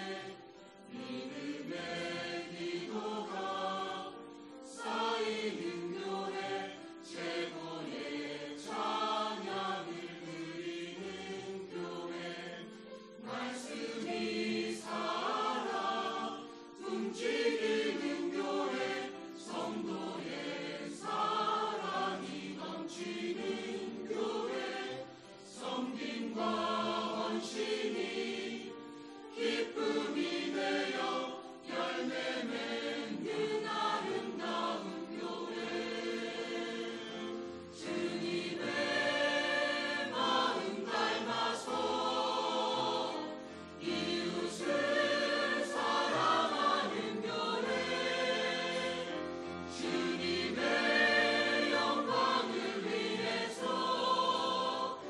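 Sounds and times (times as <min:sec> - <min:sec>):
mixed choir singing: 0:00.0 - 0:55.0.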